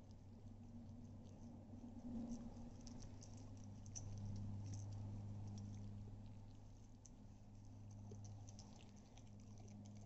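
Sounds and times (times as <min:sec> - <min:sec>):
low hum: 0:00.0 - 0:10.0
puppy licking and gnawing: 0:00.0 - 0:10.0.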